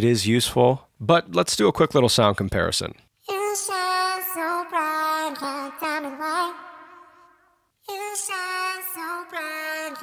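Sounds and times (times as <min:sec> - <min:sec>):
pitch-shifted sung vocal: 0:03.2 - 0:10.0.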